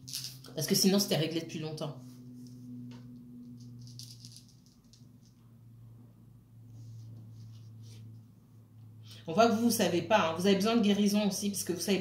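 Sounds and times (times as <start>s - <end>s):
steady low hum: 0.0s - 12.0s
small hard objects rattling: 3.8s - 5.0s.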